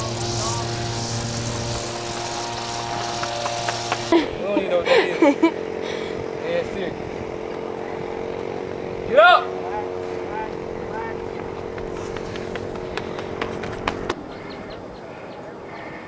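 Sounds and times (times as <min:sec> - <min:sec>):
steady hum: 0:00.0 - 0:16.0
loud drawn-out shout: 0:09.1 - 0:10.0
running footsteps on rubber track: 0:11.4 - 0:14.2.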